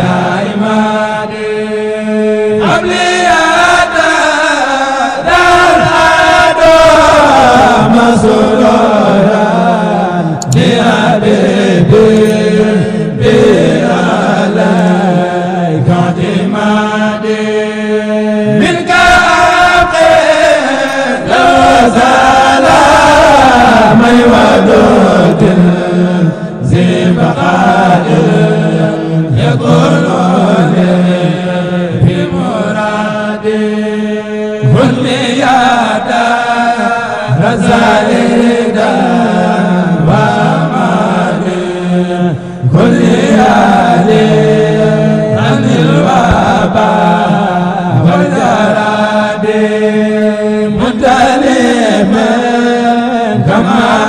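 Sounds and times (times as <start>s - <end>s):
man singing devotional chant: 0.0s - 54.0s.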